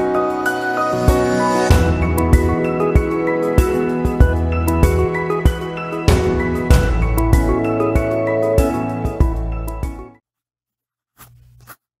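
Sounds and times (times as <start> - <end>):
background music: 0.0 - 10.2.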